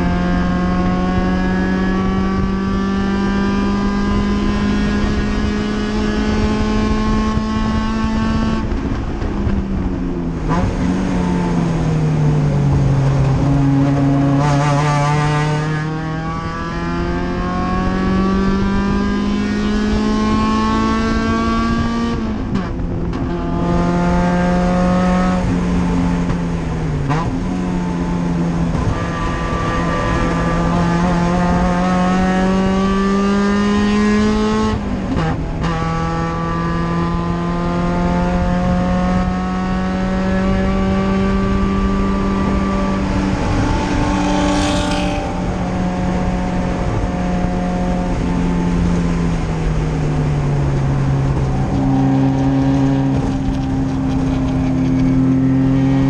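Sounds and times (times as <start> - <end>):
race car engine: 0.0 - 56.0.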